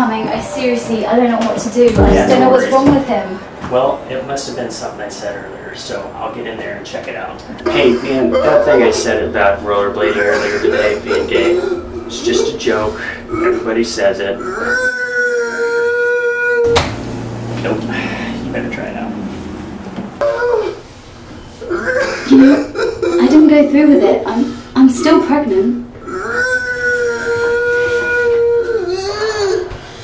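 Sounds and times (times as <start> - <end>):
man wailing: 26.1 - 29.7.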